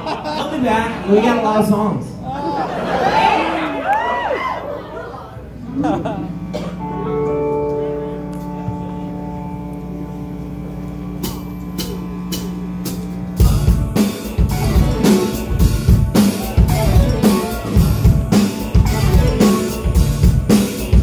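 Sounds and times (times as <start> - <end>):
held sustained notes: 4.6 - 21.0
rock band playing: 5.5 - 21.0.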